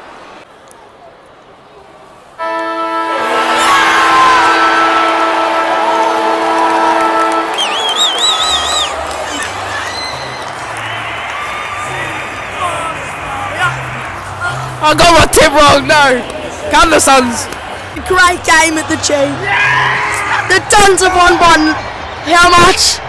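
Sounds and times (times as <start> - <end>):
stadium siren long blast: 2.4 - 13.9
crowd cheering and clapping: 2.4 - 14.7, 17.2 - 23.0
shrill warble from crowd: 2.7 - 14.7, 19.3 - 22.2.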